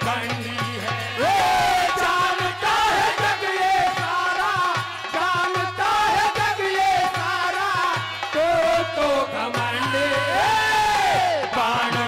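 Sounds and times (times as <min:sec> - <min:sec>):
man singing through microphone: 0:00.0 - 0:12.0.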